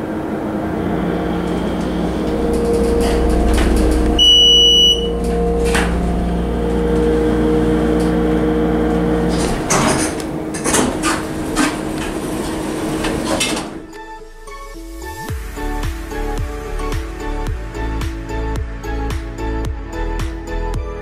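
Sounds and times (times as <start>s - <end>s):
elevator pump hum: 0.0s - 13.8s
electronic chime beep: 4.2s - 5.2s.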